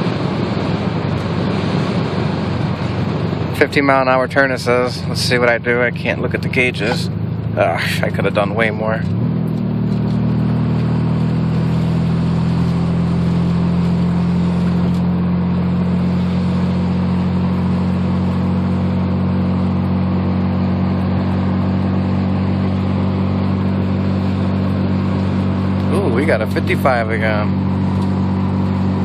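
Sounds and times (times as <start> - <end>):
rotary engine droning: 0.0 - 29.0.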